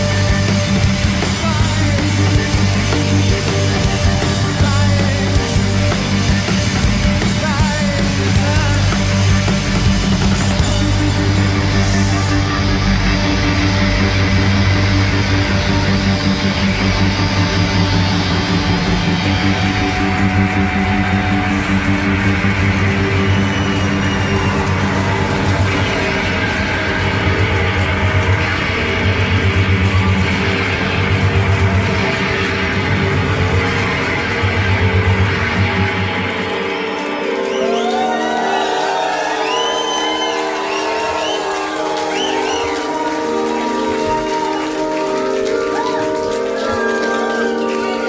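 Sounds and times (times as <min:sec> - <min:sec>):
bass guitar: 0:00.0 - 0:48.0
electric guitar: 0:00.0 - 0:48.0
rock band playing live: 0:00.0 - 0:48.0.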